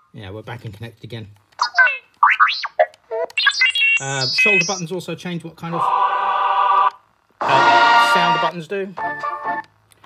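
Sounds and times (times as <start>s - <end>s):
robot beeps and whistles: 1.6s - 4.9s.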